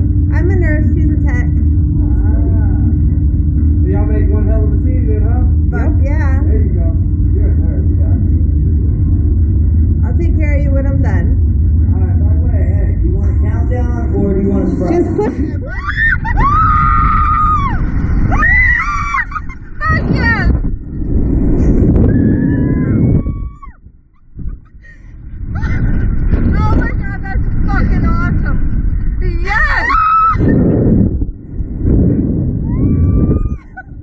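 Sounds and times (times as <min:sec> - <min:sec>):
steady low rumble: 0:00.0 - 0:34.0
woman laughing: 0:14.9 - 0:16.8, 0:19.0 - 0:20.0, 0:33.6 - 0:34.0
riders screaming: 0:15.6 - 0:19.4, 0:29.6 - 0:30.4.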